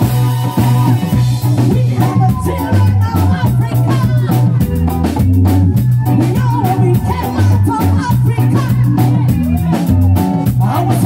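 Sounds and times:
reggae band playing: 0.0 - 11.0
lead singer singing: 0.5 - 11.0.

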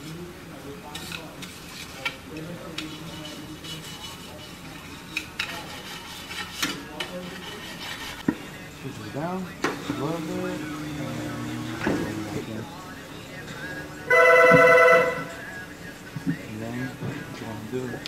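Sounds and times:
voices talking: 0.0 - 18.0
wire brush scrubbing metal rim: 0.9 - 8.2.

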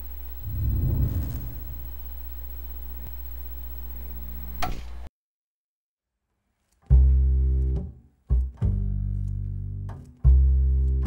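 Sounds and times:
low hum: 0.0 - 4.6.

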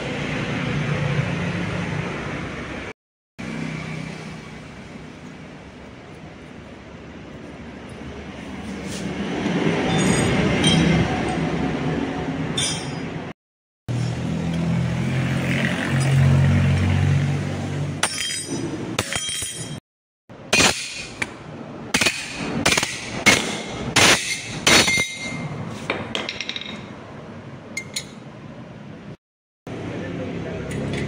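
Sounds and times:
steel pieces clinking: 18.0 - 19.8.

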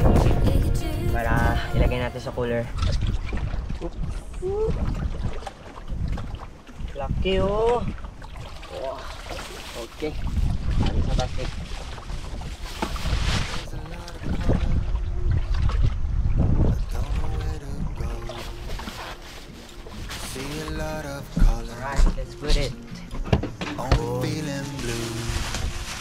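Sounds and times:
people talking: 0.0 - 2.7, 20.3 - 22.8, 23.8 - 25.3
wind rumbling on microphone: 0.0 - 8.6, 10.0 - 20.3, 25.0 - 26.0
water lapping against boat ladder: 2.6 - 26.0.

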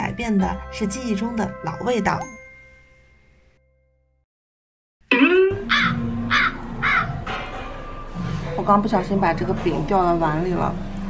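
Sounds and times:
falling pitch comic sound effect: 5.1 - 6.0
crow cawing: 5.6 - 7.2.

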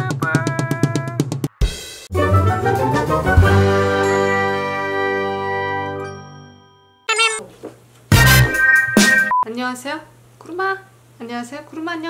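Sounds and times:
bell-like chime chord ringing: 6.0 - 7.0.

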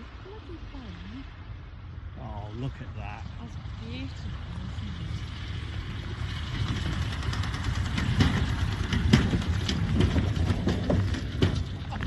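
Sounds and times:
propeller plane engine running: 0.0 - 12.0.

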